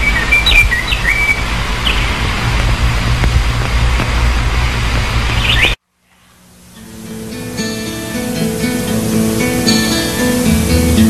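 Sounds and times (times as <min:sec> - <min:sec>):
birds chirping: 0:00.0 - 0:05.8
low outdoor rumble and hiss: 0:00.0 - 0:11.0.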